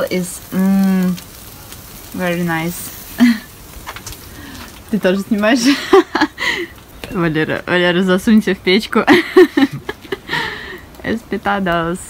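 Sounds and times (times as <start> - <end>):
breathy noise: 4.2 - 4.8, 10.2 - 11.0.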